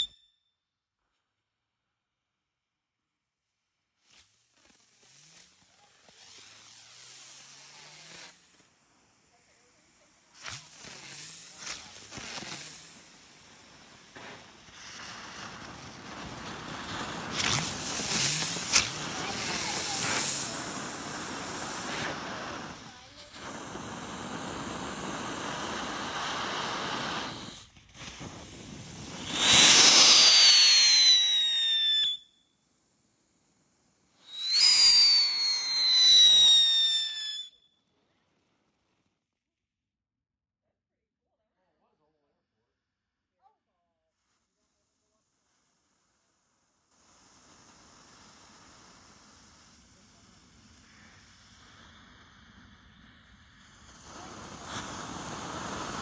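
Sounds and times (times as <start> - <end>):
falling firework whistles: 0.0 - 0.6, 4.0 - 38.1, 45.4 - 56.0
firework fountain hissing and crackling: 3.3 - 39.2, 44.1 - 56.0.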